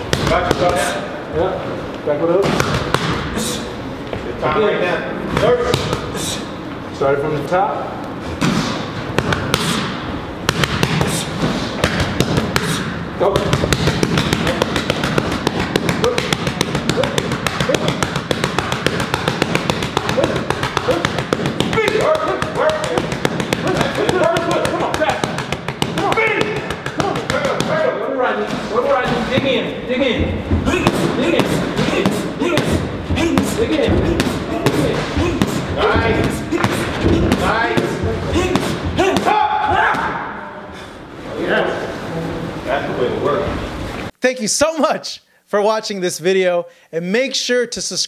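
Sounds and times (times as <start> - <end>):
gloves punching pads: 2.4 - 3.3, 8.4 - 28.0, 30.2 - 40.2.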